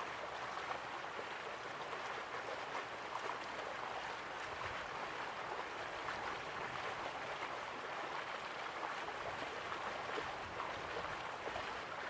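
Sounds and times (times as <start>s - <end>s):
flowing water rushing: 0.0s - 12.0s.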